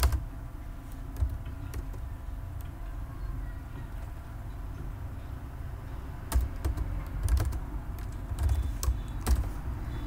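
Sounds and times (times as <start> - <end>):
keyboard typing: 0.0 - 0.3, 0.9 - 2.8, 6.3 - 9.7.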